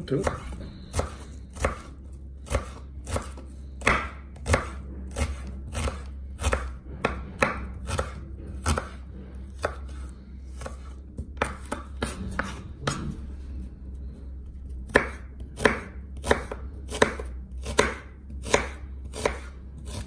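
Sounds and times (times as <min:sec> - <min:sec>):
knife dicing onion on a board: 0:00.0 - 0:13.1, 0:14.8 - 0:20.0
low steady hum: 0:00.0 - 0:20.0.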